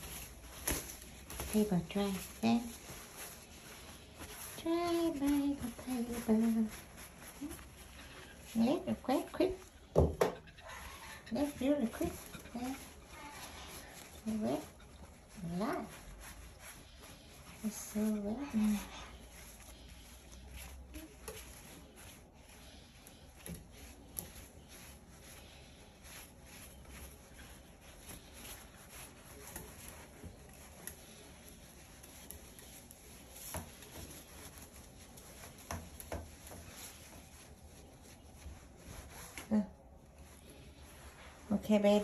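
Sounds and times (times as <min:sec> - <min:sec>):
paper towel rustling on feathers: 0:00.0 - 0:42.0.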